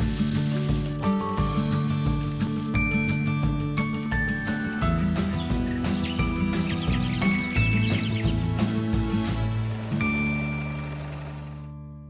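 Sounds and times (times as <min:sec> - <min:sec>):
upbeat theme jingle: 0:00.3 - 0:11.7.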